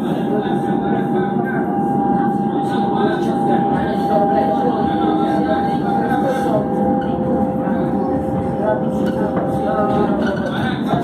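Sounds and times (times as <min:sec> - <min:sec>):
electric train running on rails: 0:00.0 - 0:11.0
high whine: 0:00.0 - 0:11.0
train passing alongside: 0:00.0 - 0:11.0.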